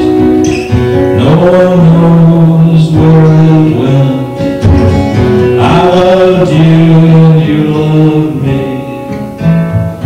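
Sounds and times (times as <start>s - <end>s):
man singing: 0.0s - 9.5s
guitar strumming: 0.0s - 10.0s.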